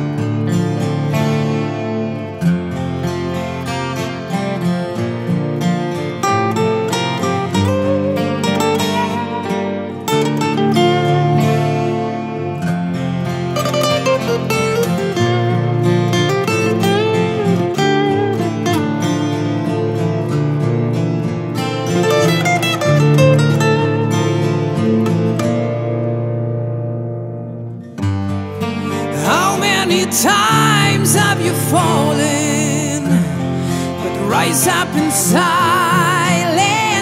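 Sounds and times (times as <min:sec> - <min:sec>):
acoustic rock ballad: 0:00.0 - 0:37.0.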